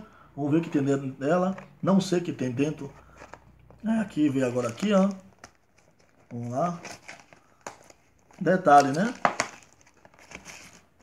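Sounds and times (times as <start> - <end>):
packaging crinkling: 4.2 - 11.0.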